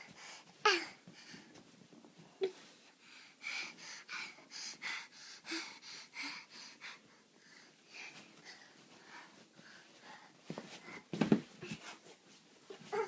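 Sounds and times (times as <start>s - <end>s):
heavy rhythmic breathing: 2.4s - 12.2s.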